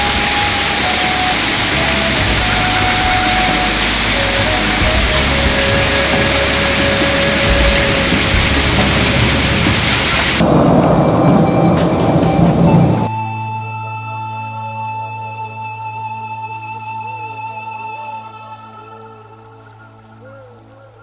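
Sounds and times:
heavy rain on pavement: 0.0s - 13.1s
low rumble of thunder: 0.0s - 13.1s.

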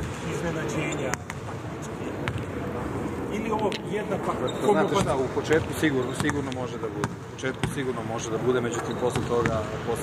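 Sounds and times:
basketball bouncing: 5.0s - 7.9s, 9.1s - 9.6s.

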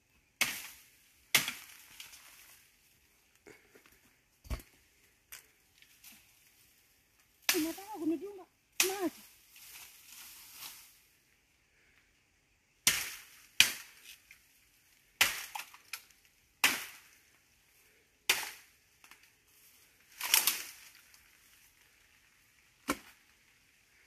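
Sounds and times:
machete chopping bamboo: 0.4s - 2.1s, 12.8s - 14.0s, 15.2s - 16.0s, 16.6s - 17.1s, 18.3s - 18.7s, 22.8s - 23.2s.

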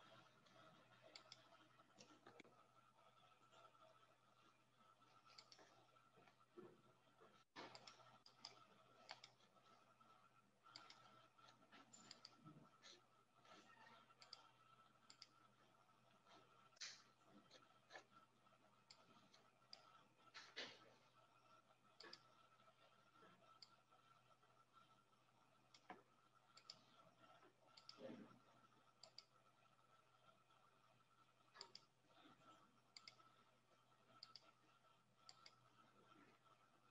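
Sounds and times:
computer mouse clicks: 0.0s - 2.6s, 5.0s - 6.4s, 7.4s - 9.9s, 10.6s - 15.6s, 16.5s - 18.2s, 18.8s - 20.8s, 21.8s - 22.6s, 23.2s - 24.1s, 25.6s - 29.4s, 31.4s - 33.5s, 34.1s - 36.9s
faint steady hum: 0.0s - 36.9s.

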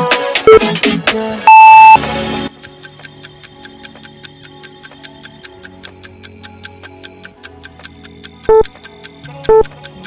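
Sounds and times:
clock-like ticking: 2.6s - 10.0s.

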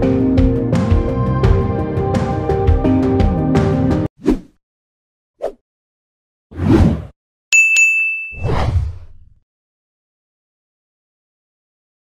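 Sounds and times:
ringing ding tone: 7.5s - 8.4s.

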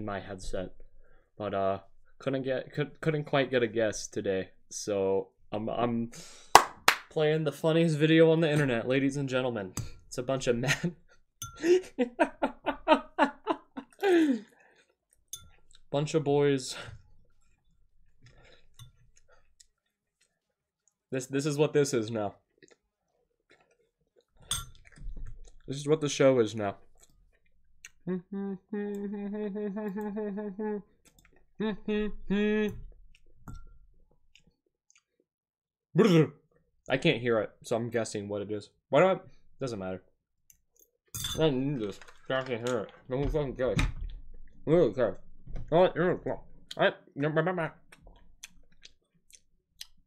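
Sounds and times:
man laughing: 11.6s - 14.5s, 28.3s - 30.8s
vocal sound falling in pitch: 28.0s - 30.8s, 31.6s - 32.8s
person humming: 28.0s - 30.9s, 31.6s - 32.8s.

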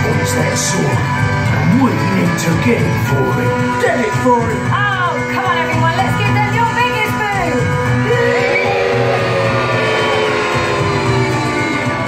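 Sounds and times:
show music over loudspeakers: 0.0s - 12.0s
long falling vocal call: 8.0s - 12.0s.

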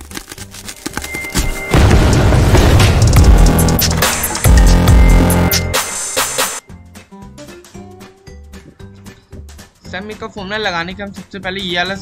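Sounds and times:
electronic music: 1.2s - 6.6s
deep boom: 1.7s - 5.7s.

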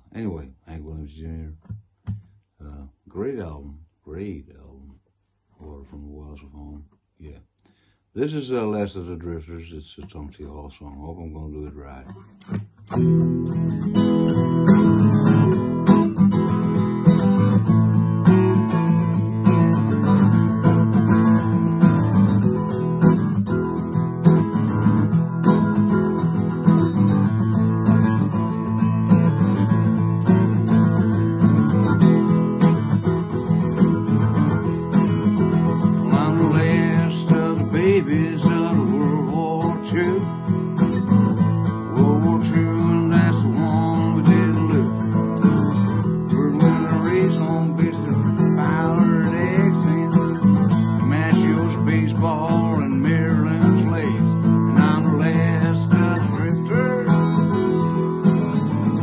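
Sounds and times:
acoustic guitar strumming: 12.1s - 59.0s
man singing: 35.7s - 40.6s, 41.6s - 45.2s, 46.0s - 57.8s.

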